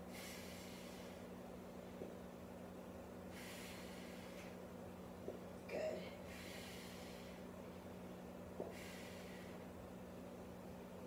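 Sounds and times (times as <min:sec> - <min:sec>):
person breathing hard: 0:00.0 - 0:01.3, 0:03.3 - 0:04.6, 0:06.2 - 0:07.6, 0:08.6 - 0:09.7
steady low hum: 0:00.0 - 0:11.0.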